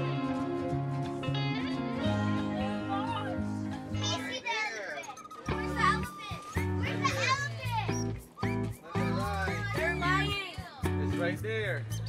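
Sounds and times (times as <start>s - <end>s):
background music with bass line: 0.0s - 4.3s, 5.4s - 12.0s
children chattering and squealing: 2.8s - 10.8s.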